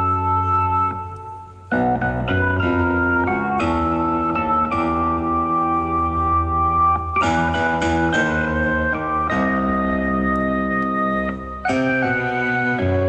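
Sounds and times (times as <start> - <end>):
keyboard playing slow chords: 0.0 - 13.0.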